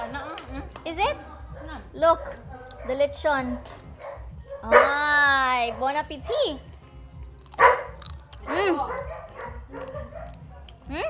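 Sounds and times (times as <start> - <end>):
dog barking: 2.2 - 6.6, 7.5 - 11.0.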